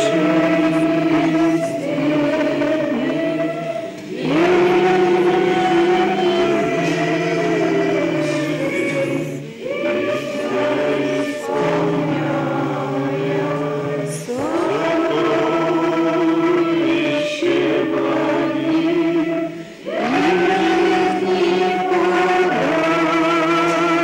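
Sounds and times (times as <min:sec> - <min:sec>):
choir singing chant: 0:00.0 - 0:24.0.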